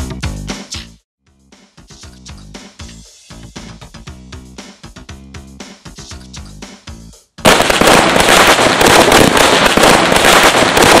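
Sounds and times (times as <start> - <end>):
firecrackers rapid cracks: 7.4 - 11.0.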